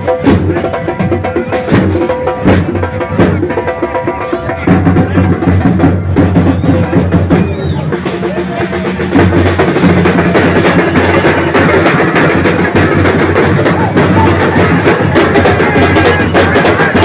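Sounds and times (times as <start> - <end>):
bass drum beat: 0.0 - 17.0
festive drumming music: 0.0 - 17.0.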